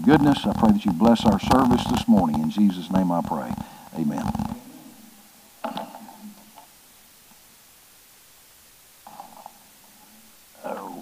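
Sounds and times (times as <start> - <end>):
muffled murmur of man's voice: 0.0 - 4.6, 10.6 - 11.0.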